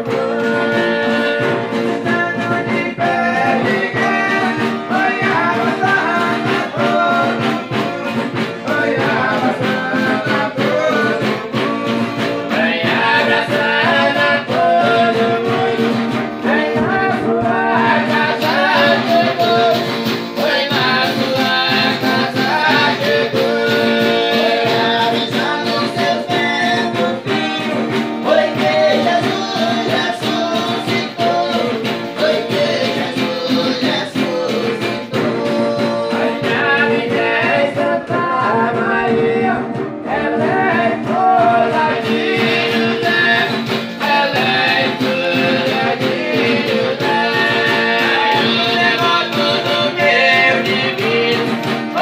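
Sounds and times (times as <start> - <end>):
men singing together: 0.0 - 52.0
strummed guitar: 0.0 - 52.0.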